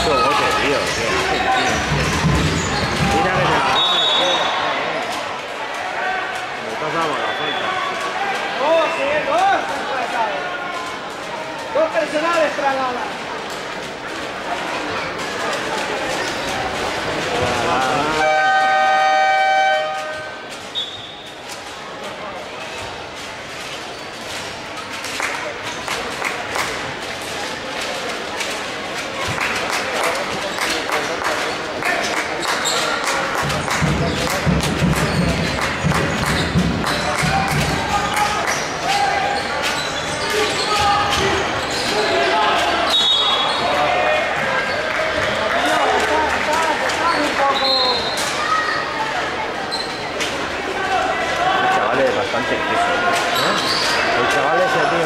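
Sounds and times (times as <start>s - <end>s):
crowd and player voices: 0.0s - 55.0s
referee whistle blast: 3.7s - 4.5s, 42.9s - 43.6s
electronic game horn: 18.2s - 20.4s.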